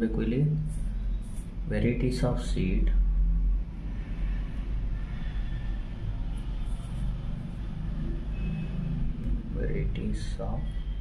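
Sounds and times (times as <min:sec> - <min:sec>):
low steady rumble: 0:00.0 - 0:11.0.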